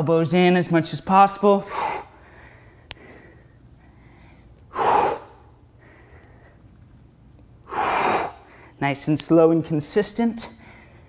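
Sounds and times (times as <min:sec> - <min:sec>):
quiet breathing: 0:01.6 - 0:06.9, 0:07.6 - 0:08.8, 0:10.4 - 0:11.0
man exhaling forcefully: 0:01.7 - 0:02.2, 0:04.7 - 0:05.5, 0:07.7 - 0:08.6.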